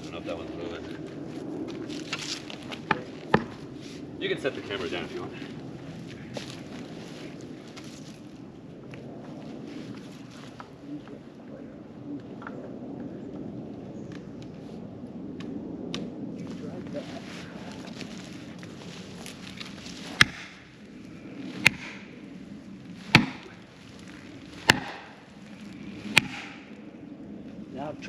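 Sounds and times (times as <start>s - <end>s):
axe striking felling wedges: 24.7s - 25.1s.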